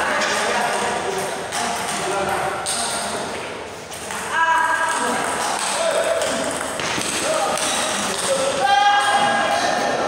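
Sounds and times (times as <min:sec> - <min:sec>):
indistinct voices in echoing hall: 0:00.0 - 0:10.0.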